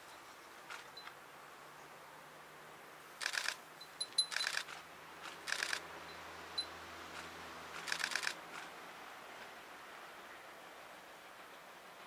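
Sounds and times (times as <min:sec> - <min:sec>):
camera shutter clicks: 0:03.2 - 0:03.6, 0:04.3 - 0:05.8, 0:07.1 - 0:08.7.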